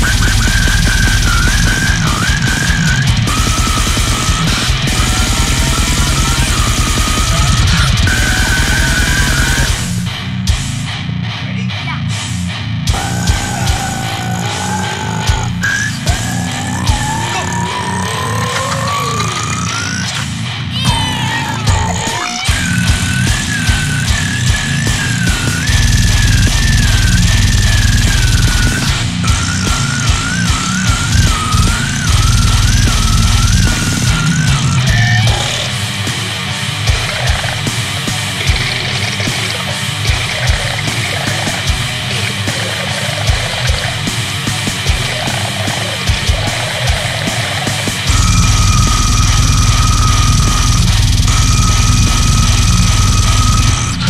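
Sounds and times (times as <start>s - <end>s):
distorted metal band playing: 0.0s - 54.0s
drums: 0.0s - 54.0s.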